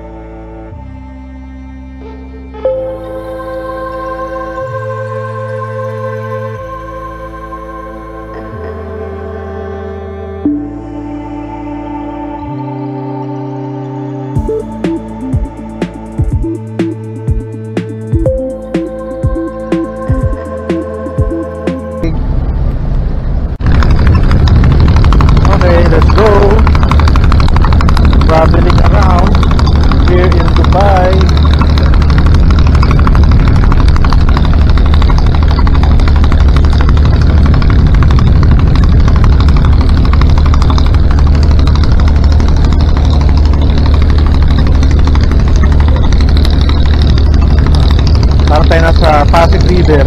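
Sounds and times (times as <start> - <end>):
boat engine droning: 0.0 - 50.0
wind noise: 22.1 - 48.6.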